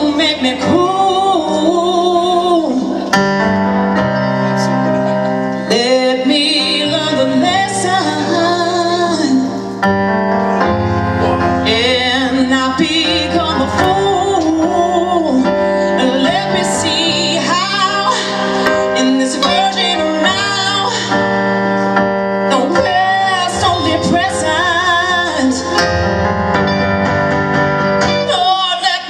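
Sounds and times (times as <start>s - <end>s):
women singing with vibrato: 0.0s - 3.1s, 5.7s - 9.7s, 11.6s - 21.6s, 22.5s - 25.9s, 28.2s - 29.0s
guitar: 0.0s - 29.0s
keyboard: 0.0s - 29.0s.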